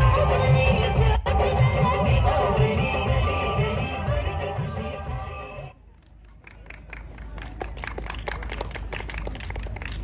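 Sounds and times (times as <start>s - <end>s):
audience applauding: 6.2s - 10.0s.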